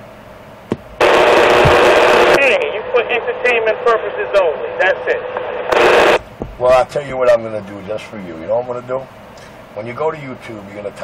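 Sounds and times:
radio static hiss: 1.0 - 7.4.

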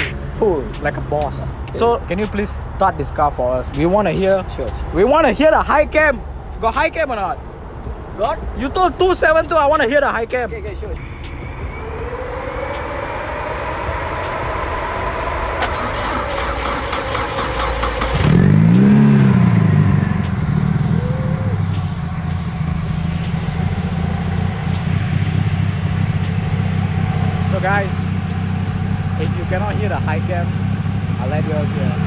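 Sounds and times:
car engine cranking and idling: 0.0 - 32.0.

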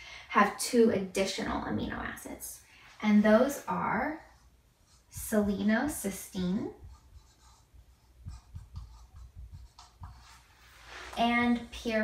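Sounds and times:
marker writing on whiteboard: 3.2 - 12.0.

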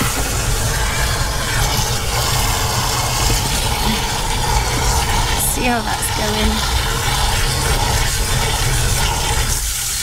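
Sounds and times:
hose water splashing into tank: 0.0 - 10.0.

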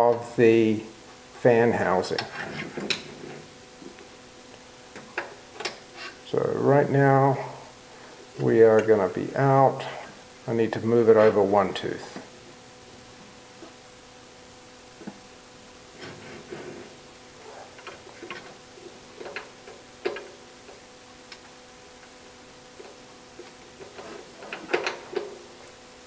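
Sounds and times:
faint steady hum: 0.0 - 26.0.

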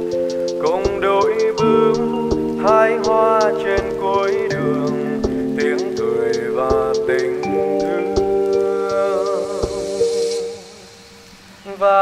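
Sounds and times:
man singing: 0.0 - 10.8, 11.6 - 12.0
lofi remix music: 0.0 - 11.1.

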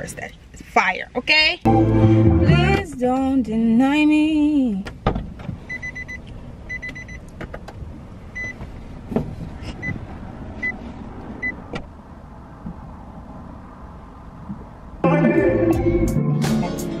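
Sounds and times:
low vehicle rumble: 1.7 - 16.2
sharp clicks and knocks: 6.8 - 7.8.

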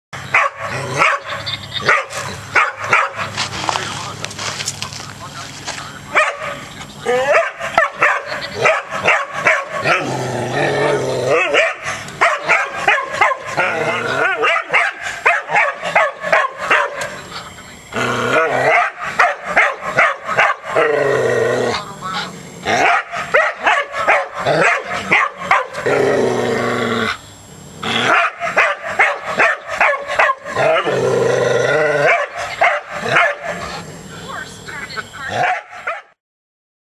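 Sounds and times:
dog barking and yipping: 0.3 - 3.4, 6.1 - 10.0, 11.3 - 17.1, 18.7 - 20.9, 22.1 - 25.8, 28.1 - 30.6, 32.0 - 33.8, 35.4 - 36.2.

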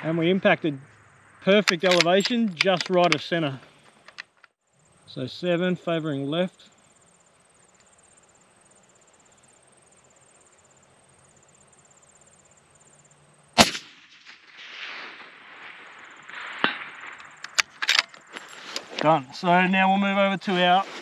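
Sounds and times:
insect chirping: 0.0 - 21.0
sharp clicks: 1.5 - 4.6, 16.6 - 19.1
rifle shot: 13.6 - 18.1.

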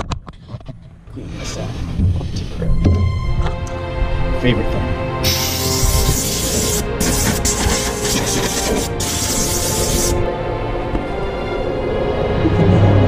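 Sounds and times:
background music with held notes: 1.8 - 13.0
hissing rush of air: 5.2 - 10.2.

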